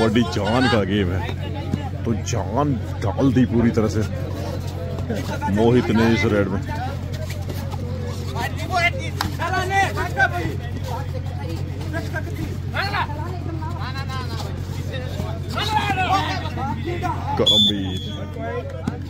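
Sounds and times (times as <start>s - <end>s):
people calling out and shouting: 0.0s - 19.0s.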